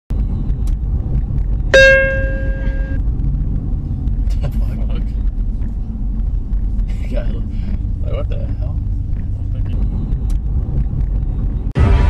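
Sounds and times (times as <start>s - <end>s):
car road and engine rumble: 0.1s - 12.0s
loud ringing tone: 1.8s - 3.0s.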